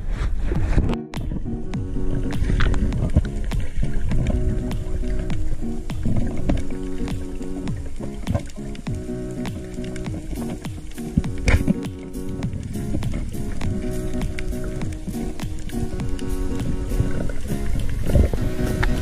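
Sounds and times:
background music with held chords: 0:00.8 - 0:19.0.

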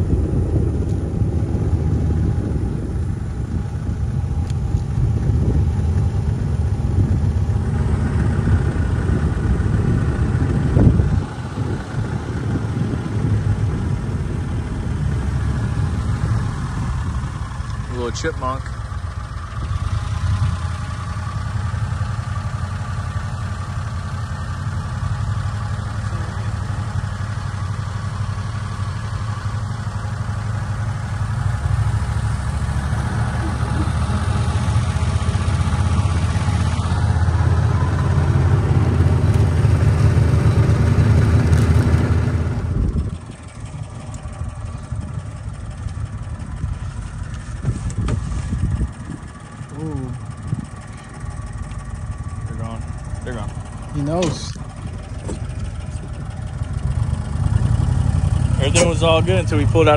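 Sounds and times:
golf cart driving: 0:00.0 - 0:59.9.

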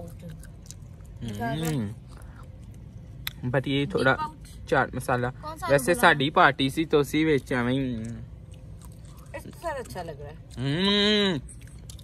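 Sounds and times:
person chewing food: 0:00.0 - 0:03.5, 0:07.4 - 0:12.0.

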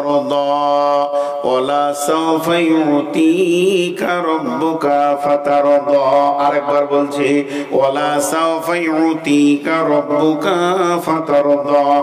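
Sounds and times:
man chanting into microphone: 0:00.0 - 0:12.0
short breaths: 0:01.1 - 0:01.4, 0:07.4 - 0:07.8.

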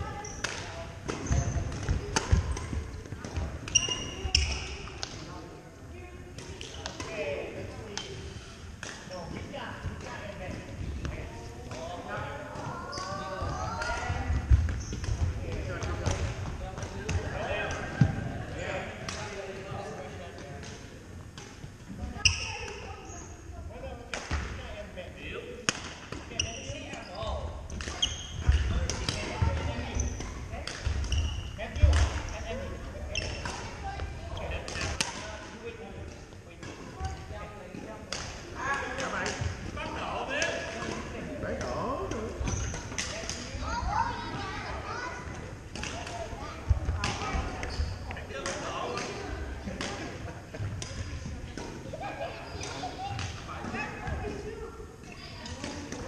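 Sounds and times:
sneakers squeaking: 0:00.0 - 0:05.3, 0:07.8 - 0:23.5, 0:25.7 - 0:35.4, 0:40.8 - 0:43.6, 0:45.2 - 0:49.4, 0:50.6 - 0:56.0
voices in hall: 0:00.0 - 0:56.0.

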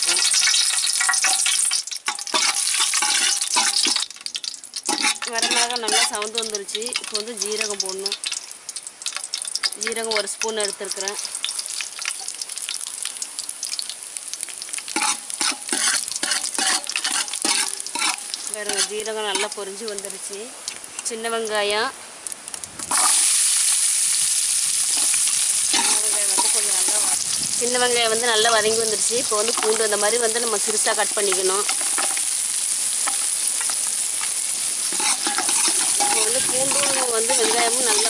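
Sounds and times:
chillies crackling in hot oil: 0:00.0 - 0:38.0
metal ladle scraping pot: 0:02.1 - 0:04.0, 0:04.9 - 0:06.2, 0:15.0 - 0:19.6, 0:24.9 - 0:27.2, 0:34.8 - 0:38.0.

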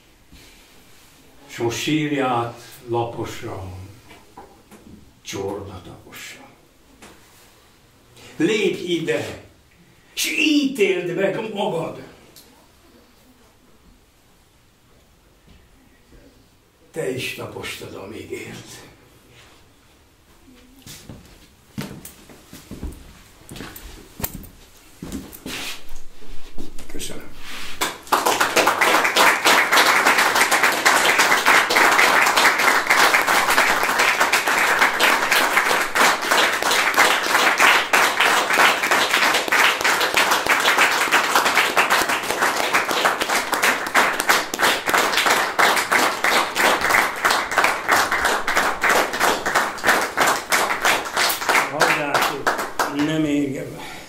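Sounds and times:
audience applauding: 0:27.8 - 0:53.3.

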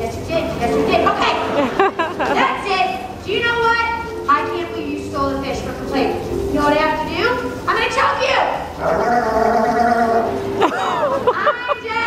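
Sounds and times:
sea lion calling: 0:05.7 - 0:10.7.

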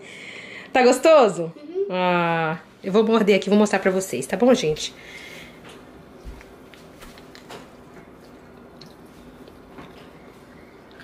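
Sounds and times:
person chewing: 0:06.7 - 0:11.0.

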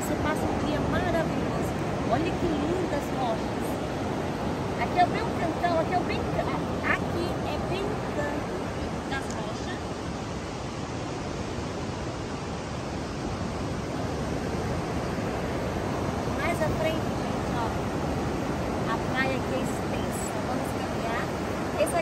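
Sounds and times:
ocean surf breaking on beach: 0:00.0 - 0:22.0.

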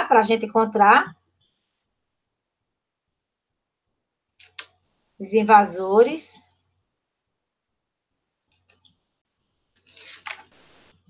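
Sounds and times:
paper page rustling: 0:09.8 - 0:11.0.

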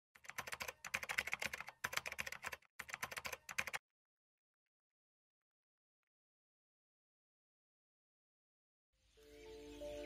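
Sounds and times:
rapid keyboard typing: 0:00.2 - 0:03.8.

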